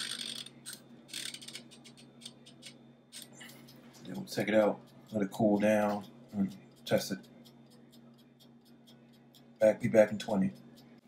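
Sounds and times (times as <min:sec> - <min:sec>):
low steady hum: 0:00.0 - 0:11.0
timer knob ratcheting clicks: 0:00.0 - 0:11.0.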